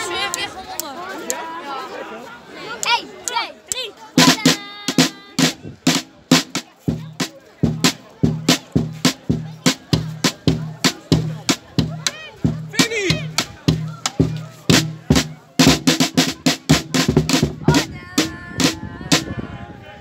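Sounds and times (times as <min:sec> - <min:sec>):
drum beaten in steady rhythm: 0:04.2 - 0:19.4
people shouting: 0:12.0 - 0:16.4.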